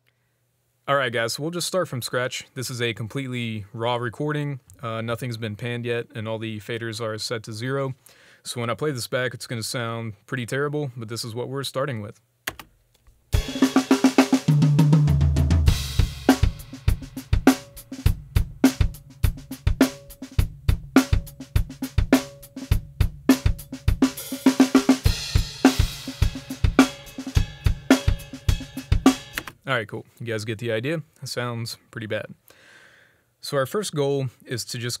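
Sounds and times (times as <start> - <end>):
drum kit groove: 13.3 - 29.6.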